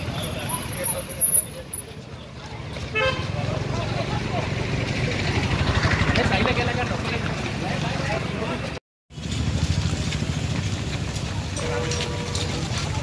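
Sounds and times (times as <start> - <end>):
people's voices: 0.0 - 8.8
street noise: 0.0 - 13.0.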